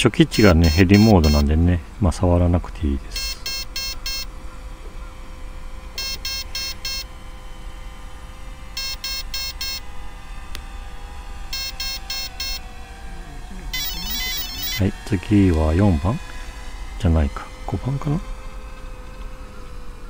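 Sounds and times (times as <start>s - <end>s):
short high beeps from motor: 0.4s - 1.5s, 3.1s - 4.3s, 6.0s - 7.1s, 8.7s - 9.8s, 11.5s - 12.7s, 13.7s - 14.8s
warbling tone: 13.4s - 16.2s.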